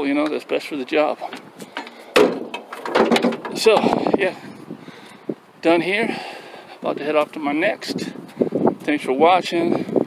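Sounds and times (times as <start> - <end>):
sharp wooden knock: 2.2 - 3.6.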